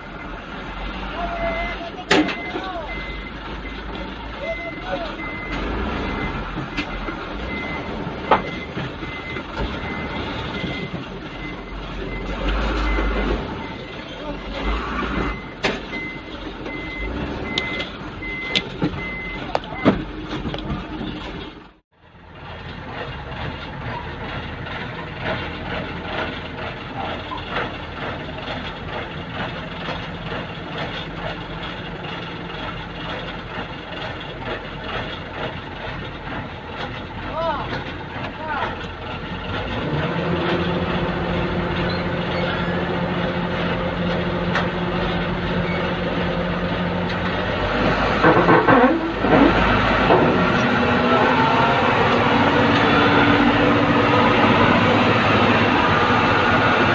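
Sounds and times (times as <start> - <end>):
heavy machinery noise: 0.0 - 56.9
truck engines rumbling: 0.0 - 56.9
back-up alarm beeping: 1.4 - 20.1.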